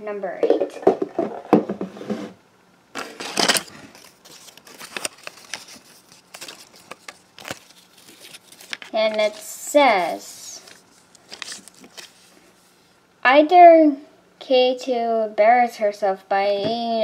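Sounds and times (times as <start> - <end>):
paper rustling and crinkling: 3.0 - 12.6.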